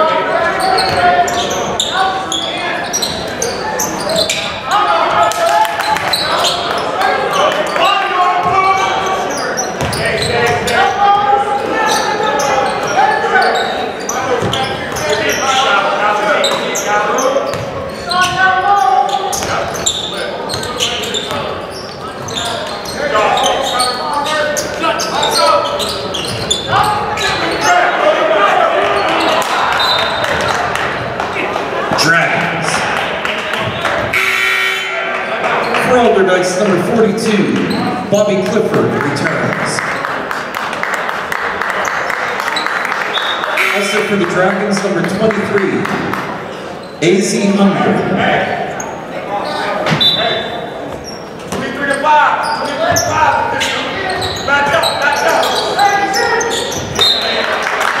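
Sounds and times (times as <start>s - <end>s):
voices talking and calling out: 0.0s - 40.1s, 41.6s - 58.0s.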